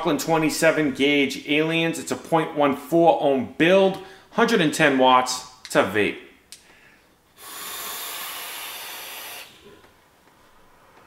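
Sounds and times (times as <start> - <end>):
airy hiss of vapour: 7.4 - 9.6.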